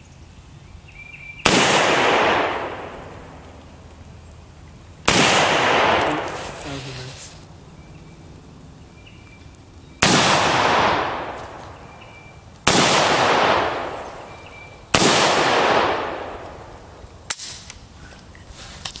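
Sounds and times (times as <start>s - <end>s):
gunshots with echo: 1.4s - 3.4s, 5.1s - 7.1s, 10.0s - 12.0s, 12.6s - 17.6s.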